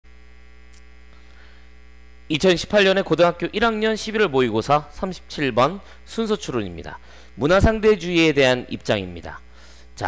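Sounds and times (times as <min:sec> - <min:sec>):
electrical mains hum: 0:00.1 - 0:10.0.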